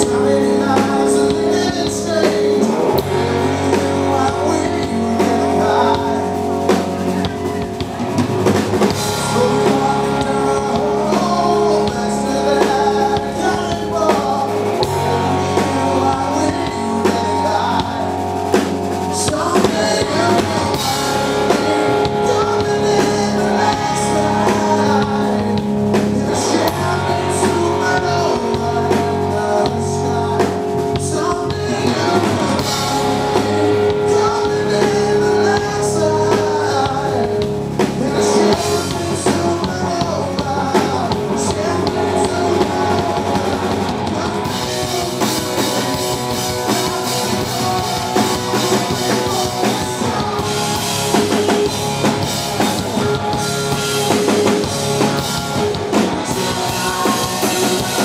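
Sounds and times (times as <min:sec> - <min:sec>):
drum kit: 0:00.0 - 0:58.0
electric guitar: 0:00.0 - 0:58.0
live rock band playing: 0:00.0 - 0:58.0
male singer lead vocals: 0:00.0 - 0:58.0.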